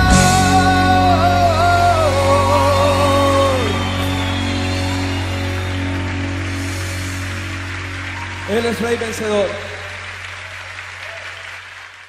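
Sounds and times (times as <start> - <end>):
audience applauding: 1.8 - 12.0.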